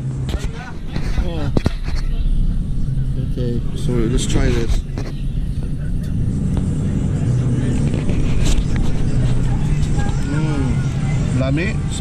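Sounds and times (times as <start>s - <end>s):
low engine hum: 0.0s - 12.0s.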